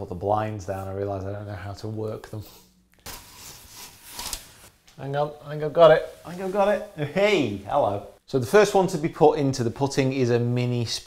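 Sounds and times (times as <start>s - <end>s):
window blinds rubbing and scraping: 3.1s - 4.7s, 5.8s - 6.9s.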